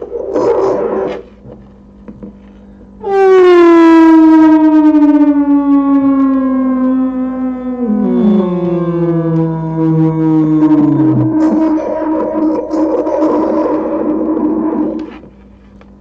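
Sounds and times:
distorted feedback tone: 3.0s - 15.6s.

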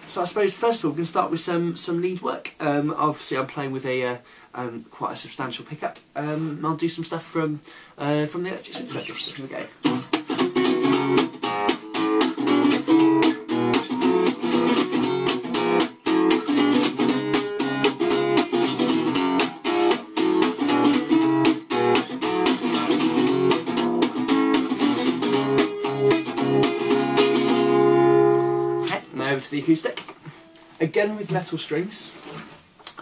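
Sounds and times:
gypsy jazz guitar lead: 8.3s - 31.5s.

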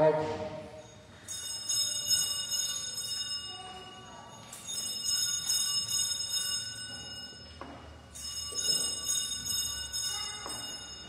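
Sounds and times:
high bright bell peals: 0.6s - 11.0s.

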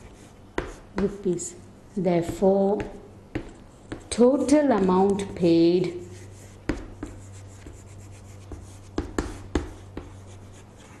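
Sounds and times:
chalk tapping on board: 0.0s - 1.3s, 2.2s - 5.1s, 6.2s - 11.0s
chalk scratching on chalkboard: 5.9s - 11.0s.

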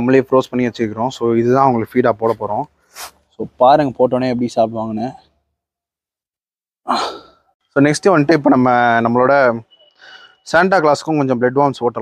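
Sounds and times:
man speaking: 0.0s - 2.7s, 3.4s - 5.3s, 7.8s - 9.7s, 10.4s - 12.0s
man sighing: 6.9s - 7.5s.

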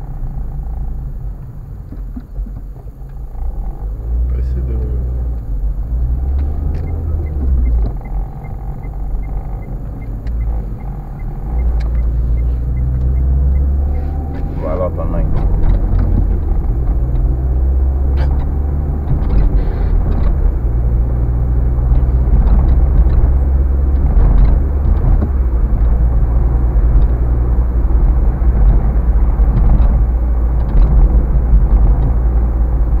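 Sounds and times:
car engine and tyres rumbling: 0.0s - 33.0s.

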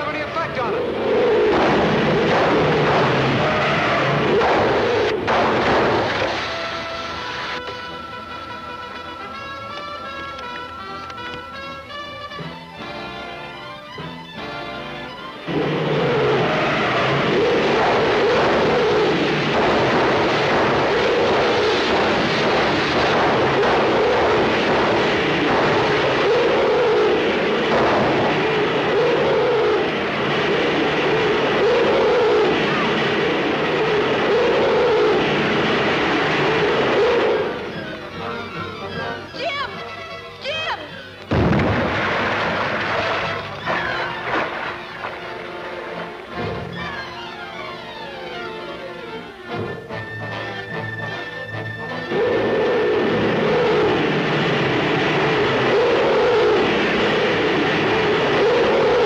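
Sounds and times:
loud rushing roar: 0.0s - 11.0s, 15.4s - 38.6s, 41.3s - 46.8s, 52.0s - 59.0s
orchestral music: 1.7s - 59.0s
sudden low hit: 41.3s - 43.9s.

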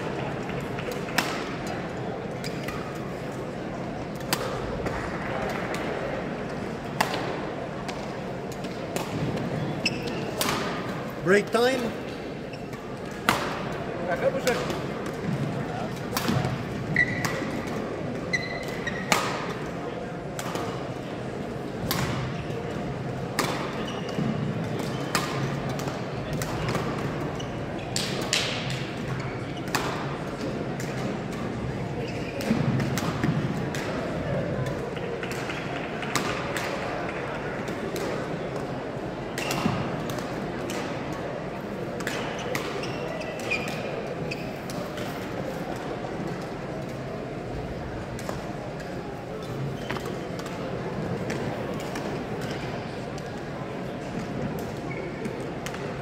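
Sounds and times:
rackets hitting shuttlecocks: 4.1s - 11.0s, 12.7s - 19.7s, 21.8s - 22.3s, 23.3s - 27.1s, 28.0s - 31.5s, 32.4s - 38.7s.

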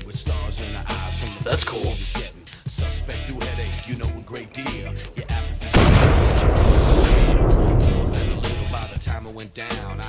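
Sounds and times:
background music: 0.0s - 10.0s
loud explosion blast: 5.7s - 8.9s.

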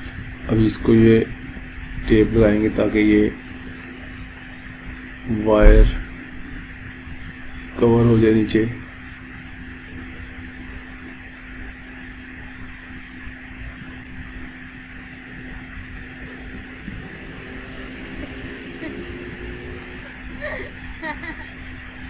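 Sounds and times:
noisy room background: 0.0s - 22.0s
steady low hum: 0.0s - 22.0s.

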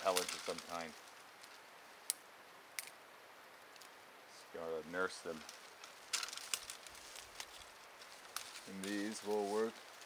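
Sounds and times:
dry twigs snapping: 0.0s - 2.2s, 5.4s - 10.0s.

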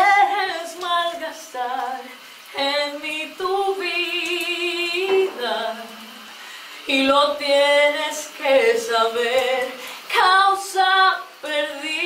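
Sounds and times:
woman singing a ballad: 0.0s - 12.0s.

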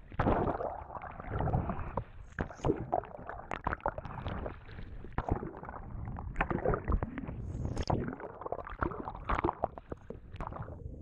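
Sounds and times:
underwater gurgling and bubbling: 0.0s - 11.0s.

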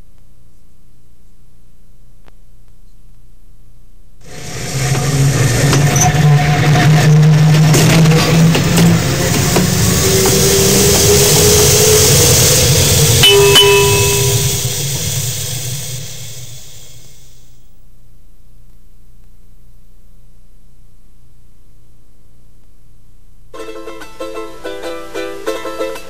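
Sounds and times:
streetcar rumbling on rails: 4.3s - 17.3s
trolley bell ding: 13.2s - 15.2s.

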